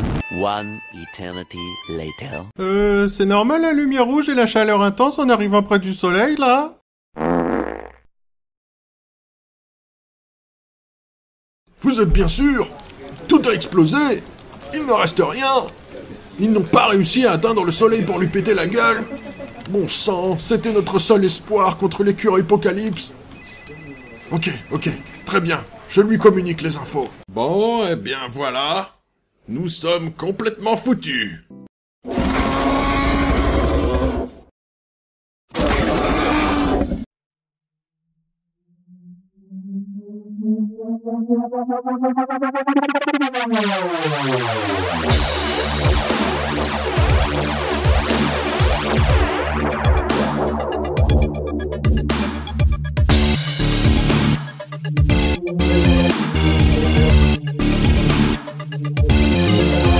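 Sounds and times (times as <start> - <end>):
low rumble: 12.1 - 12.7, 38.9 - 43.7
beast-like roar: 32.1 - 34.4, 35.6 - 37.1.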